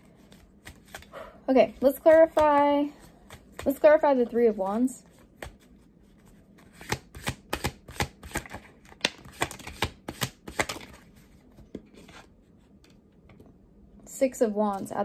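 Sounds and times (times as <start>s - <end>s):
cards being shuffled: 0.1s - 1.1s, 1.7s - 12.2s.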